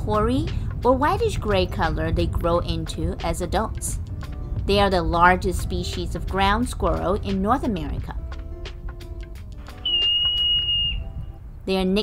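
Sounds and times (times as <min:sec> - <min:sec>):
marmot whistling: 0:09.7 - 0:11.3.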